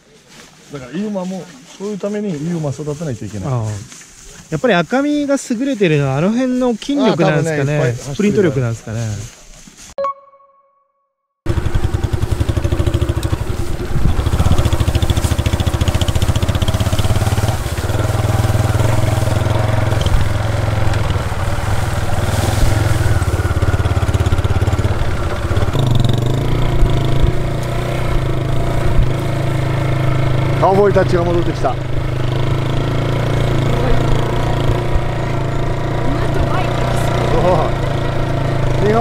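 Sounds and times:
motorcycle engine running: 11.5 - 39.0.

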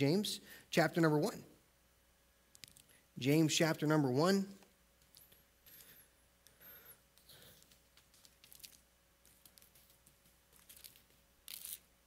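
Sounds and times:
thin pages being turned: 9.4 - 11.9.

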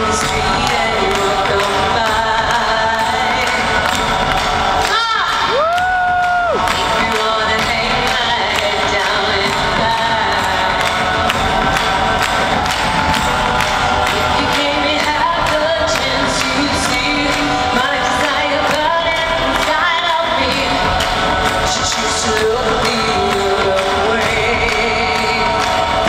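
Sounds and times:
crowd cheering: 0.0 - 26.0
percussion-driven concert music: 0.0 - 26.0.

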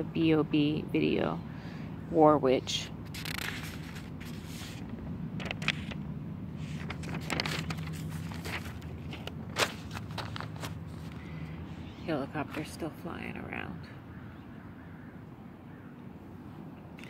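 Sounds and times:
paper rustling: 3.1 - 6.0, 6.6 - 11.3.

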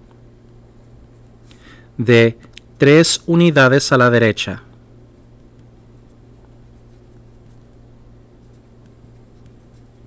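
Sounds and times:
steady low hum: 0.0 - 10.0
pencil scratching on paper: 5.3 - 10.0.

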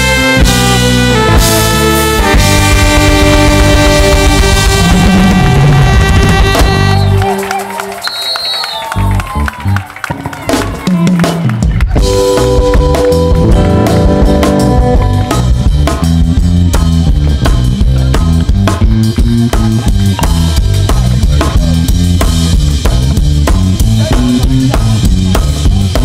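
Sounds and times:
guitars: 0.0 - 7.4, 11.6 - 26.0
stepping bass line: 0.0 - 7.5, 10.5 - 26.0
drum kit beat: 0.0 - 7.9, 10.1 - 26.0
live band playing upbeat song: 0.0 - 26.0.

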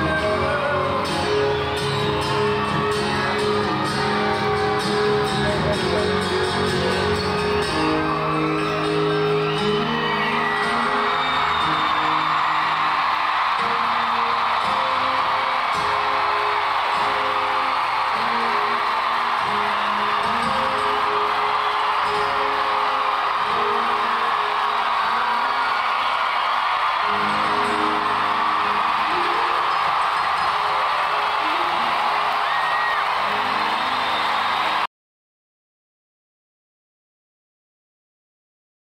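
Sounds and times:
acoustic guitars playing chords: 0.0 - 34.8
arena crowd cheering and whooping: 0.0 - 34.9.

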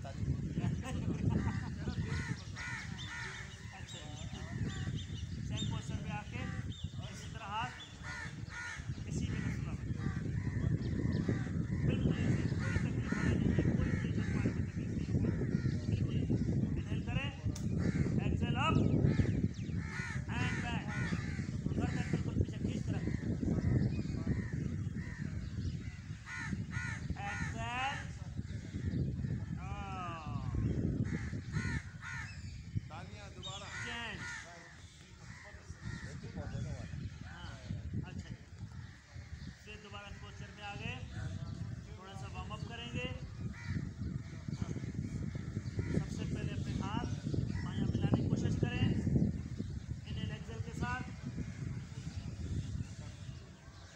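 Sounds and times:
crows cawing: 1.2 - 4.2, 7.8 - 15.9, 19.0 - 22.2, 23.1 - 27.6, 30.8 - 32.7, 33.5 - 36.4, 43.4 - 44.5.

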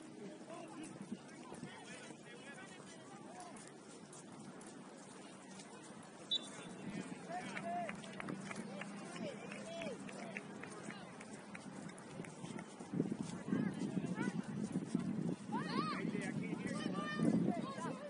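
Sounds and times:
distant people calling and shouting: 0.0 - 18.0.

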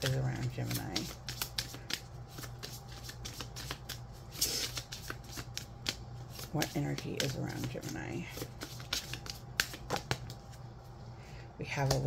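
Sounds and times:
cards rustling: 0.0 - 10.6
playing cards shuffling: 0.0 - 10.6.

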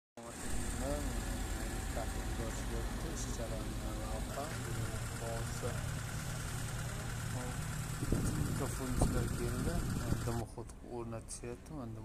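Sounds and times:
low engine rumble: 0.2 - 12.0.

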